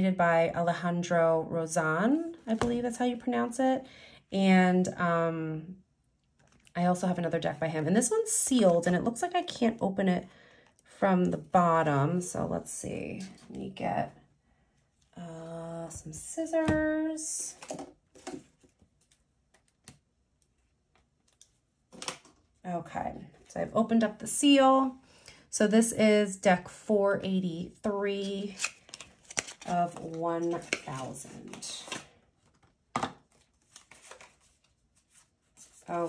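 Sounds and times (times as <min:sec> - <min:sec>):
cards rustling: 0:28.4 - 0:36.0.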